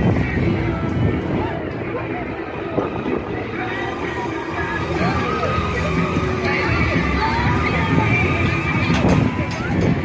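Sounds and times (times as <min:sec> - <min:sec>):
crowd voices: 0:00.0 - 0:10.0
ride machinery: 0:00.0 - 0:10.0
high wavering cries: 0:01.8 - 0:08.9.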